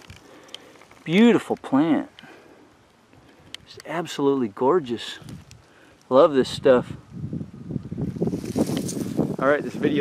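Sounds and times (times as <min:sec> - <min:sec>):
wind buffeting microphone: 0:06.2 - 0:10.0
footsteps on dry straw and grass: 0:08.0 - 0:09.9.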